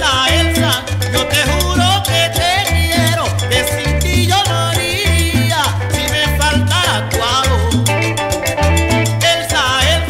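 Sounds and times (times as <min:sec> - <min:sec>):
bass line: 0:00.0 - 0:10.0
bending electric guitar melody: 0:00.0 - 0:10.0
cumbia percussion: 0:00.0 - 0:10.0.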